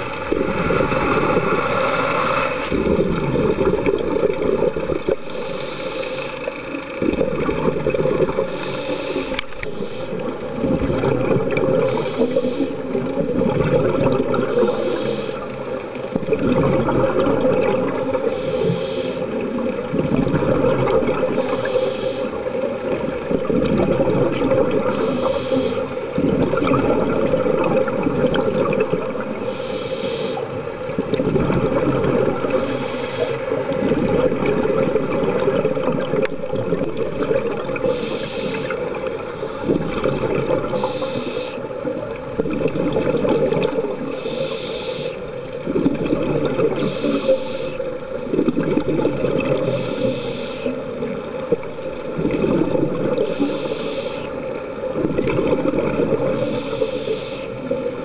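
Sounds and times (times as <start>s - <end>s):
exhaled air bubbling underwater: 0.0s - 58.0s
underwater hiss and rumble: 0.0s - 58.0s.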